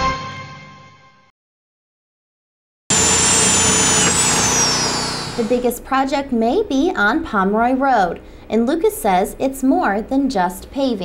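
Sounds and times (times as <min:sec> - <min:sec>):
electric drill whining into wood: 0:02.9 - 0:05.7.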